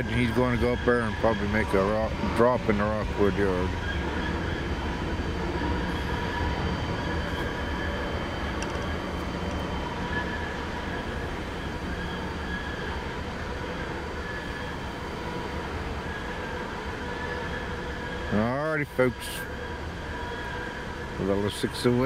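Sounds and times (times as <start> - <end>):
freight cars rumbling: 0.0 - 22.0
high wheel squeal: 0.0 - 22.0.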